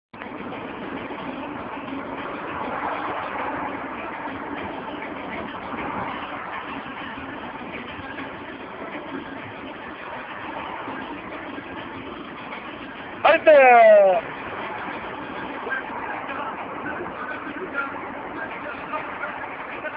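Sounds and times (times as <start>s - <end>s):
car engine and road noise: 0.1s - 19.9s.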